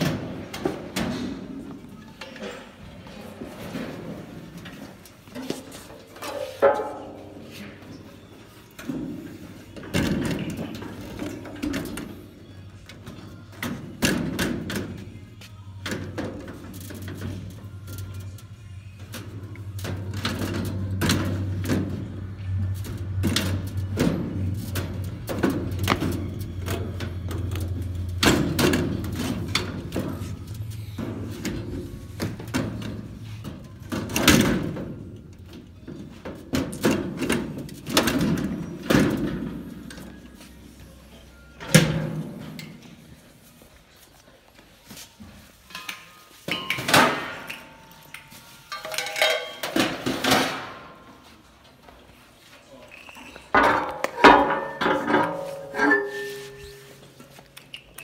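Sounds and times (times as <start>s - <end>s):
music: 0.0s - 51.6s.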